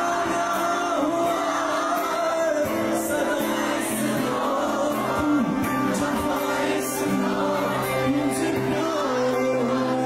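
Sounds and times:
amplified acoustic guitar: 0.0s - 10.0s
audience singing along: 0.0s - 10.0s.

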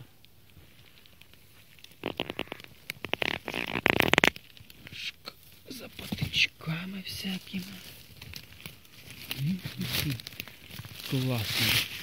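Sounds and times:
dry leaves and twigs crackling: 0.0s - 12.0s.

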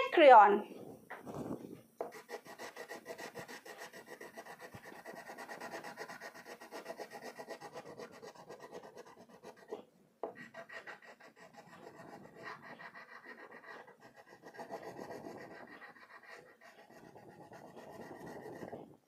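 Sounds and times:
crayon rubbing on paper: 1.1s - 19.0s.

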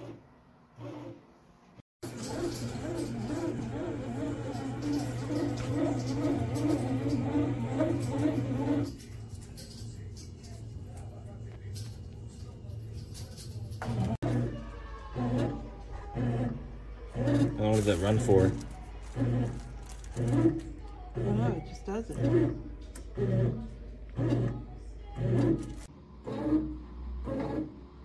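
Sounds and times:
bread maker motor hum: 0.0s - 1.3s, 2.0s - 12.3s, 13.8s - 28.0s.

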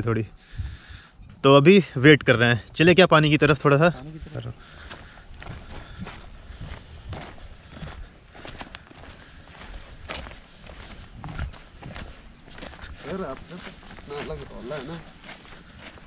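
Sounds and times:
crickets trilling: 0.0s - 16.0s
footsteps on dirt track: 3.9s - 16.0s.

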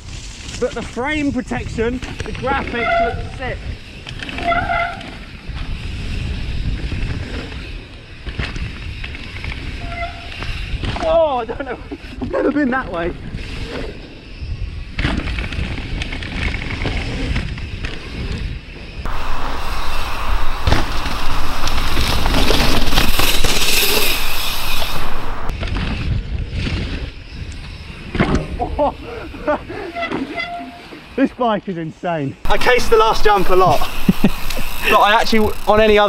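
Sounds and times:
bike tyres rolling on dirt: 0.0s - 31.2s, 32.4s - 36.0s
bike knocking and rattling: 0.2s - 11.4s, 14.8s - 28.6s, 32.5s - 36.0s
wind rushing over microphone: 5.2s - 11.0s, 13.1s - 29.9s.

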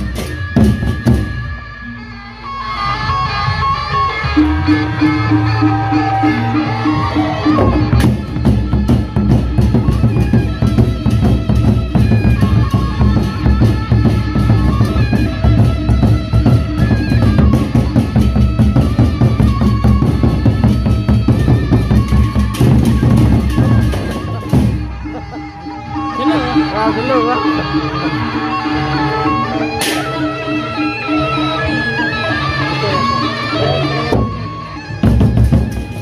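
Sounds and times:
barrel drums beaten with sticks: 7.6s - 24.8s.

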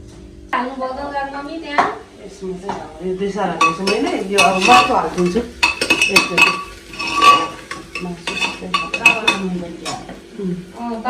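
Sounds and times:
metal spoon clinking in pot: 3.6s - 10.1s.

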